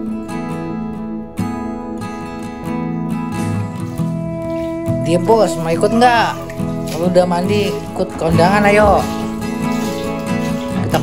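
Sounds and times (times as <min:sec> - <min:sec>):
acoustic guitar strumming: 0:00.0 - 0:11.0.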